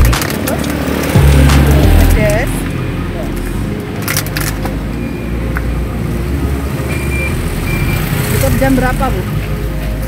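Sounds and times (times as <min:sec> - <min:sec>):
voice: 0:00.0 - 0:02.6, 0:08.4 - 0:09.3
low engine rumble: 0:00.0 - 0:07.2.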